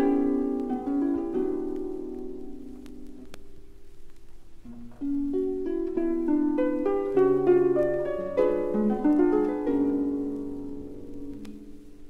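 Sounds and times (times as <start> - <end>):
vinyl record click: 0.0 - 11.8
harp and orchestra music: 4.8 - 11.5.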